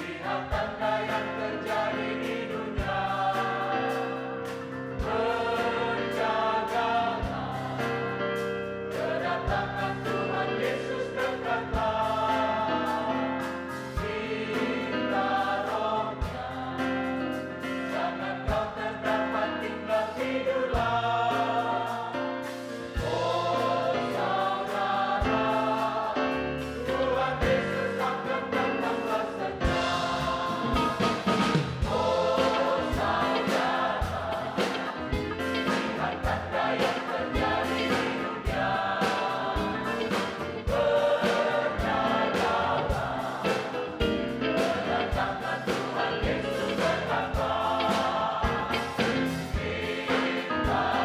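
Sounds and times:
drums: 0.0 - 51.0
keyboards: 0.0 - 51.0
mixed choir singing gospel: 0.0 - 51.0
electric bass guitars: 22.6 - 51.0.

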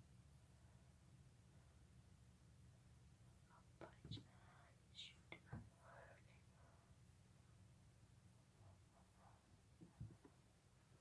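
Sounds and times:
faint whispering: 3.4 - 7.0.

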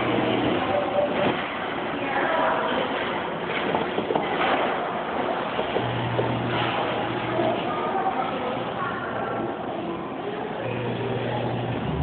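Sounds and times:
noisy store ambience: 0.0 - 12.0.

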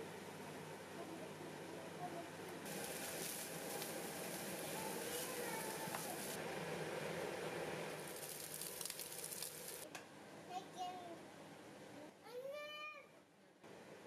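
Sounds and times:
frying crackles: 2.6 - 6.9, 7.6 - 9.9
meat and onions sizzling: 2.7 - 6.4, 7.8 - 9.8
wooden spoon stirring: 2.7 - 6.4.

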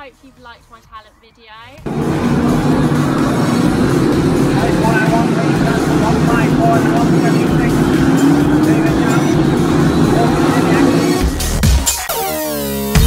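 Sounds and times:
race car engines rumbling: 1.8 - 11.6
car accelerating: 1.8 - 11.9.

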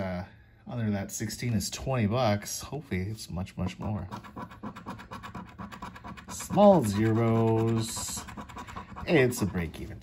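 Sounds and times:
coin scratching lottery ticket: 4.1 - 9.9.

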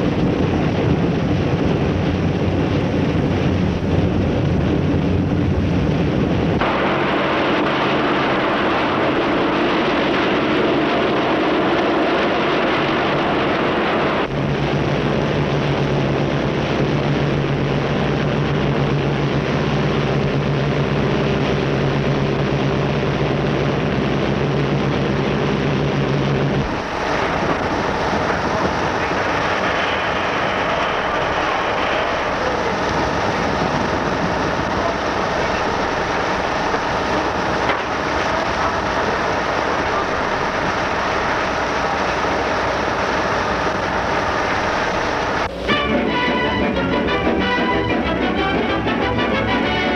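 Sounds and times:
airship engines droning: 0.0 - 49.9
rough rumble: 0.0 - 49.9.

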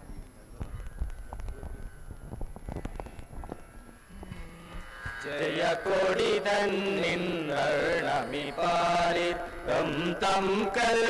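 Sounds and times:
wind rumble on microphone: 0.0 - 5.2.

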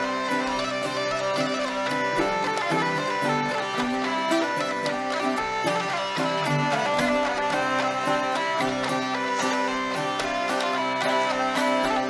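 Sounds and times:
hurdy-gurdy playing: 0.0 - 12.0
plucked string instrument: 0.0 - 12.0.

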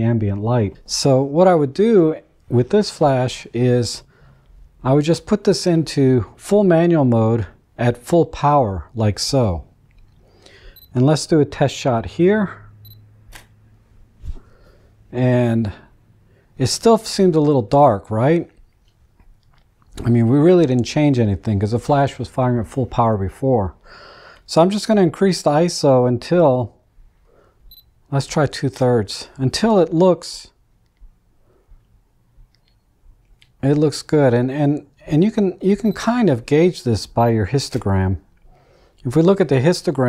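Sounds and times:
faint small clicks: 31.8 - 33.6.

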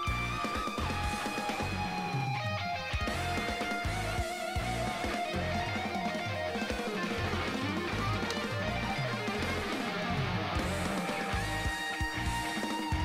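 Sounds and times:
rhythmic bass line: 0.0 - 2.2, 3.0 - 13.0
electric guitar: 0.0 - 13.0.

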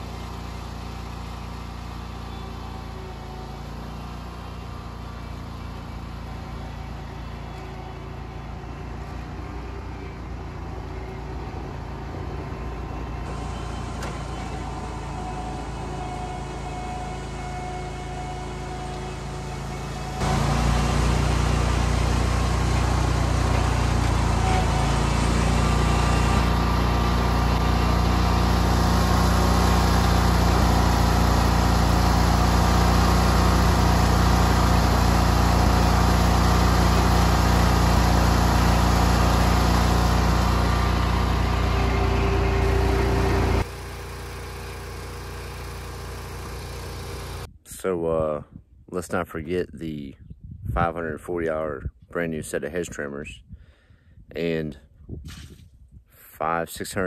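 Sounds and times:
small gasoline engine running: 0.0 - 47.5
faint engine hum: 0.0 - 47.6.

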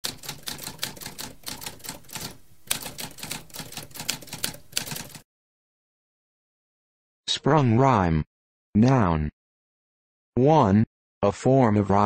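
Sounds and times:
manual typewriter keystrokes: 0.0 - 5.2.

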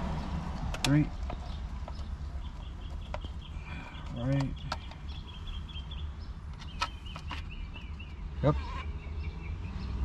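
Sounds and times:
birds chirping faintly: 0.0 - 10.0
steering wheel parts clicking: 0.4 - 8.2.

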